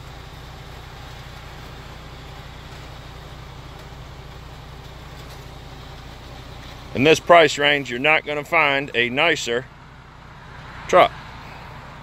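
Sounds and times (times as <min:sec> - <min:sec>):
hydraulic low hum: 0:00.0 - 0:12.0
truck engine running: 0:00.0 - 0:12.0.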